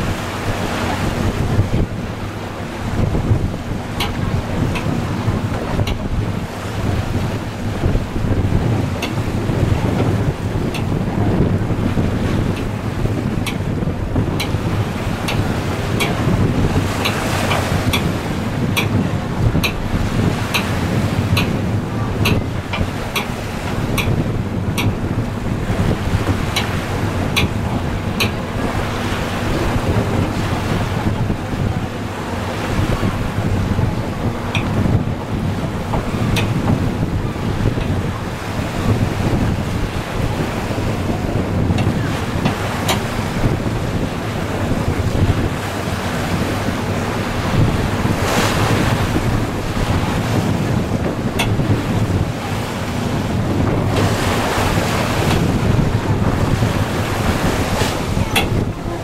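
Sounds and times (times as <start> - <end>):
boat engine droning: 0.0 - 59.0
water rushing along hull: 0.0 - 59.0
wind buffeting microphone: 0.0 - 59.0.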